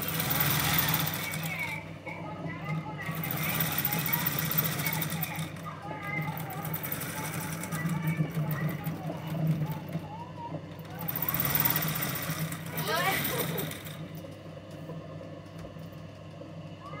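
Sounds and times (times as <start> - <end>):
sewing machine stitching: 0.0 - 1.8, 3.0 - 5.6, 6.2 - 10.0, 10.9 - 14.1.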